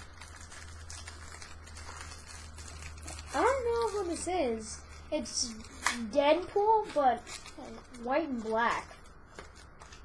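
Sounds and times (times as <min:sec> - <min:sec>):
low steady hum: 0:00.0 - 0:10.0
package rustling: 0:00.0 - 0:10.0.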